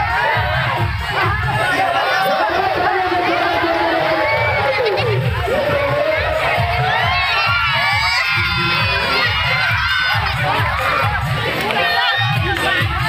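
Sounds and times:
crowd shouting and cheering: 0.0s - 13.0s
low beat: 0.0s - 13.0s.

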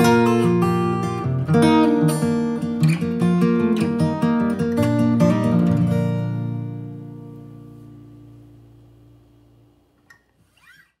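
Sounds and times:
acoustic guitar chord: 0.0s - 9.8s.

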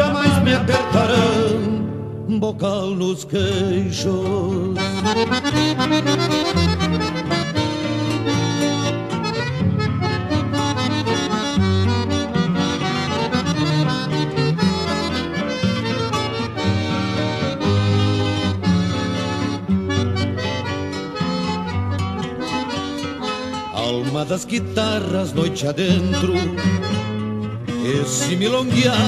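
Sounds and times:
accordion melody: 0.0s - 2.4s, 3.5s - 29.0s
rhythmic accompaniment: 4.8s - 25.3s.

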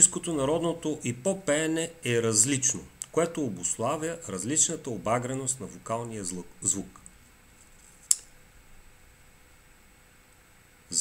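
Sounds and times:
faint room hiss: 0.0s - 11.0s
sharp click: 8.1s - 8.3s.

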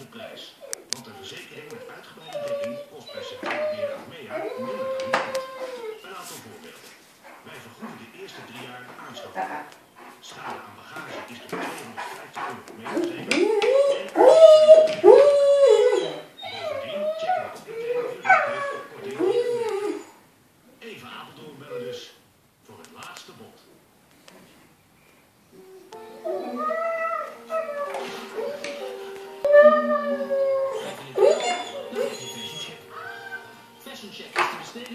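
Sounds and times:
dog howling: 1.7s - 6.1s, 12.9s - 20.2s, 25.6s - 33.6s.

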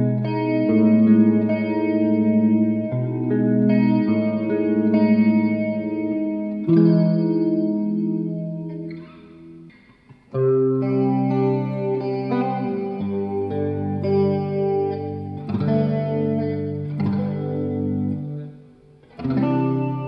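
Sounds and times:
electric guitar clean chords: 0.0s - 20.0s.

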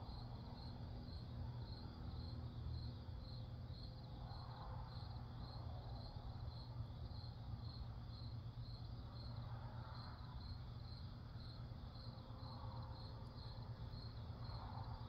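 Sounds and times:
crickets chirping: 0.0s - 15.0s.

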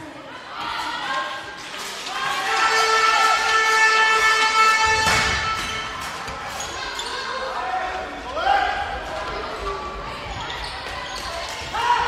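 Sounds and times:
players shouting: 2.0s - 5.9s.

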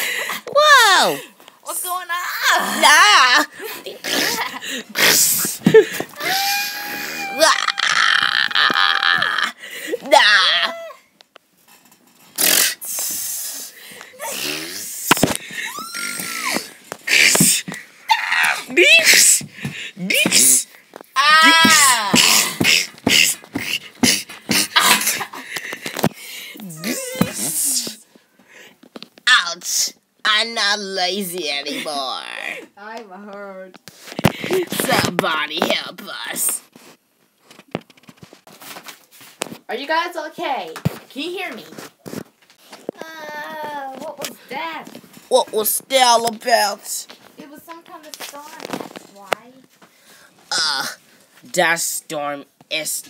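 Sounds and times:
child making mouth sound effects: 12.4s - 13.0s, 14.2s - 15.1s.

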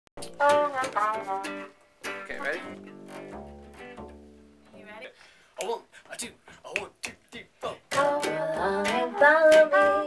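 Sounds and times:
plucked string notes: 0.2s - 5.0s.

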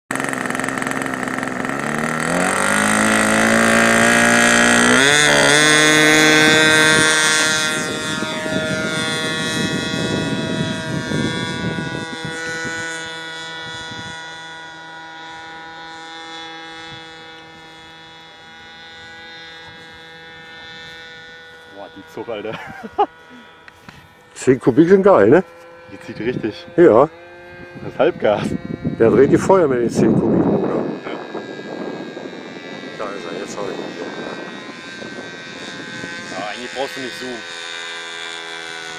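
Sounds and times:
model airplane engine: 0.1s - 38.9s.

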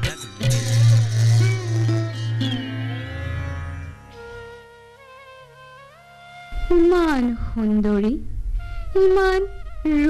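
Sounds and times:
low hum: 6.6s - 10.0s.

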